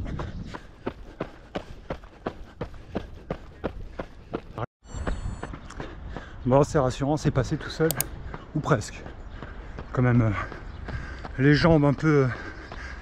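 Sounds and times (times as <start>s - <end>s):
wind rumble on microphone: 0.0s - 1.0s
running footsteps on pavement: 0.0s - 4.7s, 5.5s - 13.0s.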